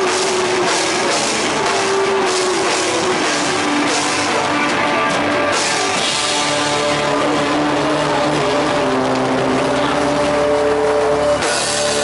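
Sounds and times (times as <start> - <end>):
distorted electric guitars: 0.0 - 12.0
live rock band playing: 0.0 - 12.0.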